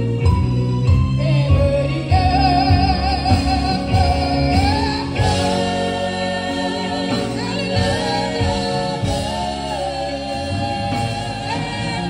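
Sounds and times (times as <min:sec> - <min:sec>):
drums: 0:00.0 - 0:12.0
keyboard: 0:00.0 - 0:12.0
woman singing lead: 0:00.0 - 0:12.0
backing singers: 0:01.2 - 0:12.0.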